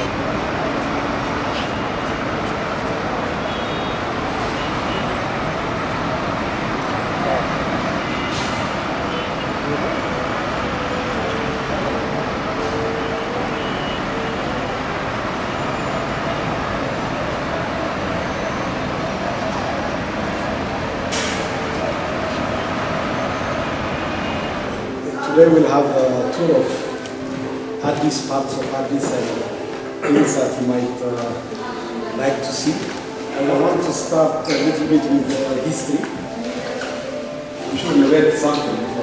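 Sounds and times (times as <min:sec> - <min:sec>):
heavy road traffic: 0:00.0 - 0:39.0
indistinct voices of many people: 0:00.0 - 0:39.0.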